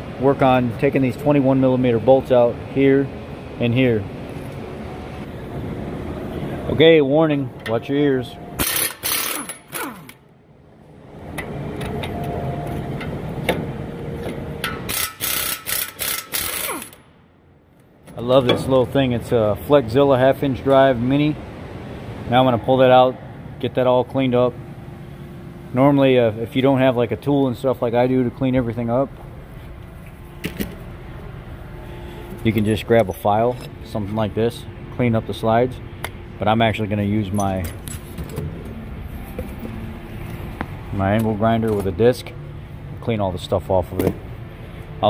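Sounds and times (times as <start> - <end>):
low background hum: 0.0 - 45.0
air impact wrench: 8.6 - 10.2, 14.6 - 17.1.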